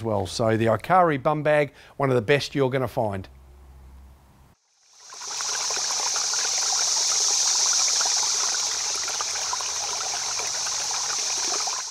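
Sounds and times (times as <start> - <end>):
stream water rushing: 4.9 - 11.9.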